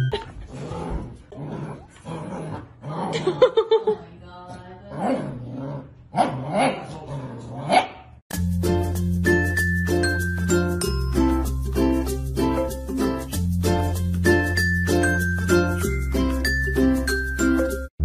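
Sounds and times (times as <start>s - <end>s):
dogs growling and yipping: 0.2s - 3.6s, 5.0s - 7.9s.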